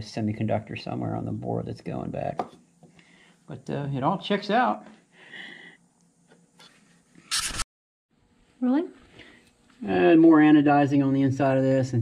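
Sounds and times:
person breathing near microphone: 2.8 - 3.5, 5.0 - 5.9.

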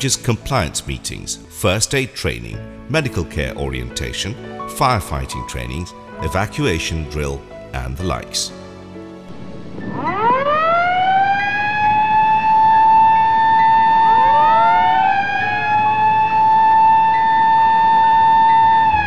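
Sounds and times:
fire alarm siren wailing: 9.4 - 19.0.

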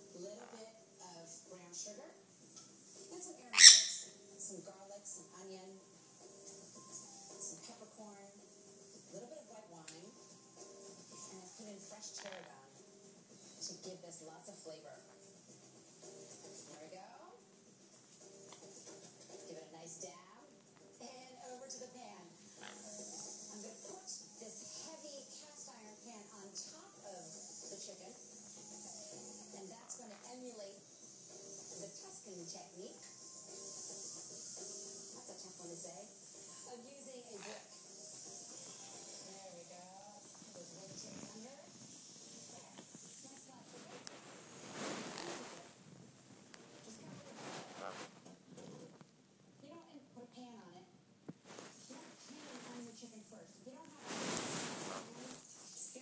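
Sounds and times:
parrots chattering: 3.4 - 4.4, 12.0 - 12.7, 22.4 - 23.3, 37.2 - 39.2
parrot squawking: 3.5 - 4.2, 12.1 - 12.6, 22.5 - 23.0, 37.2 - 37.8
steady high hiss: 22.4 - 25.2, 26.6 - 29.8, 30.7 - 32.0, 32.9 - 48.2.

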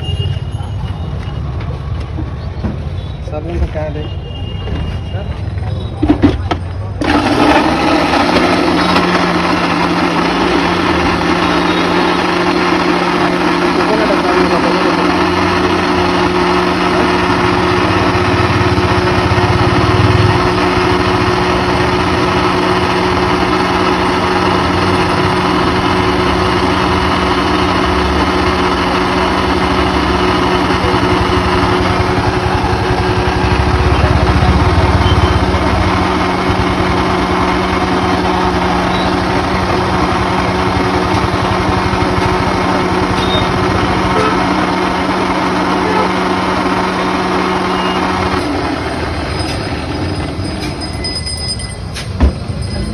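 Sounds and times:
mixer-grinder motor running: 7.0 - 50.8.

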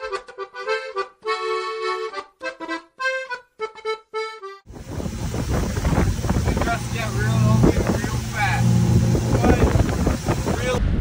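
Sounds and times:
motorboat engine hum: 4.7 - 10.8
wind buffeting microphone: 4.7 - 11.0
voice fragments: 5.6 - 10.8.

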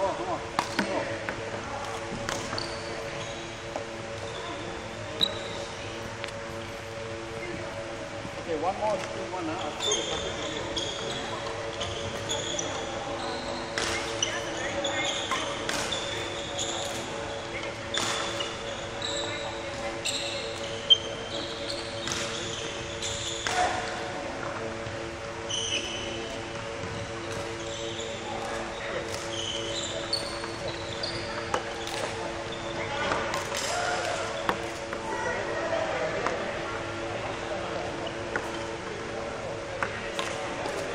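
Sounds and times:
court shoes squeaking: 0.0 - 35.3, 36.2 - 40.9
steady hall hum: 0.0 - 40.9.

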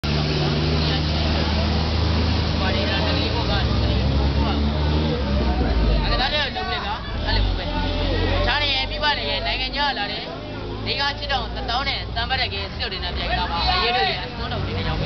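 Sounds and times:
vehicle engine humming: 0.0 - 15.0
people talking: 0.1 - 15.0.

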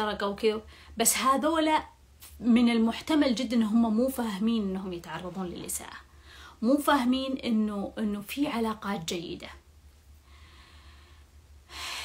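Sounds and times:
woman speaking: 0.0 - 9.6
steady low hum: 0.0 - 12.0
faint breathing: 6.1 - 6.6, 10.2 - 12.0.

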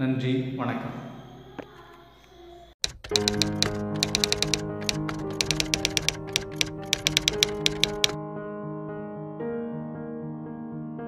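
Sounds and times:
rapid typing clicks: 2.8 - 8.2.

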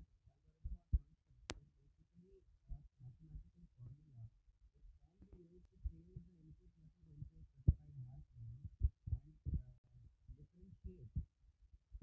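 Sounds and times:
man talking muffled: 0.0 - 4.3, 4.9 - 11.2.

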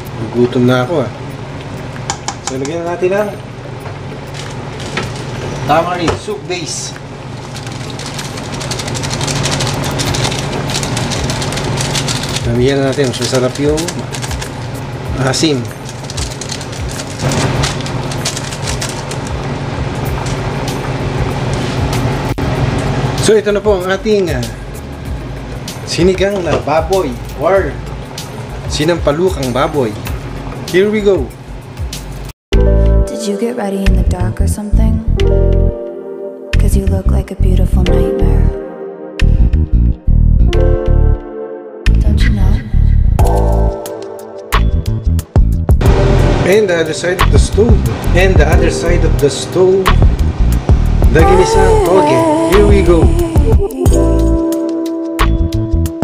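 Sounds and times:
constant low hum: 0.0 - 30.6
background music: 12.2 - 56.0
low hum: 39.2 - 41.2, 44.7 - 46.7
music with held notes: 43.2 - 46.8, 47.4 - 56.0
person's voice: 46.5 - 49.5, 51.1 - 54.4
person talking: 51.1 - 54.3.

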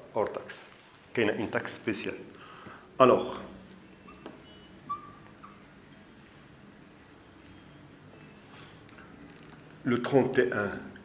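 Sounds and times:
marker squeaking on whiteboard: 3.5 - 6.2.

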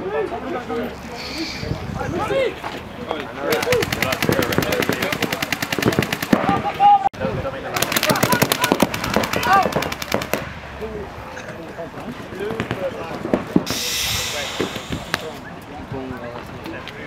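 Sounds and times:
paintball markers rapid firing: 3.5 - 6.7, 7.8 - 10.5.

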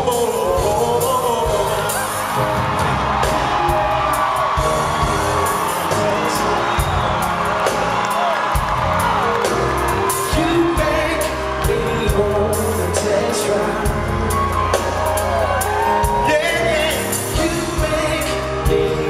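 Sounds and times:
wordless sung vocals: 0.0 - 2.6, 4.8 - 7.4, 10.1 - 19.0
live band with keyboards and drums: 0.0 - 19.0.

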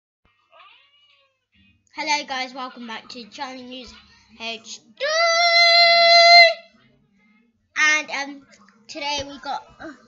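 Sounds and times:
faint meow-like call: 0.5 - 1.4.

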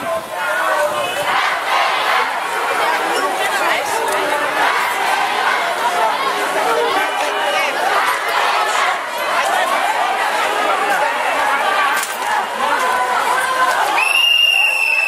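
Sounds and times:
crowd voices talking and calling: 0.0 - 15.0.

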